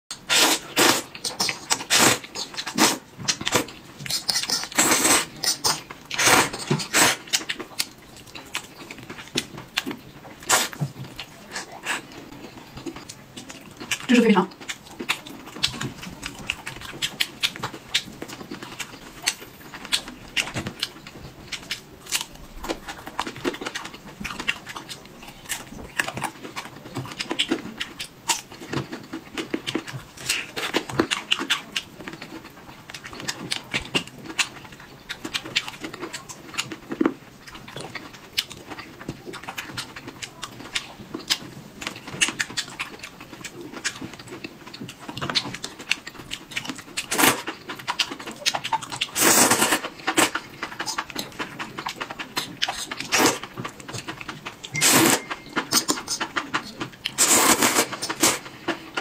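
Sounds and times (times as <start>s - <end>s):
crisp bites and wet chewing: 0.3s - 59.0s.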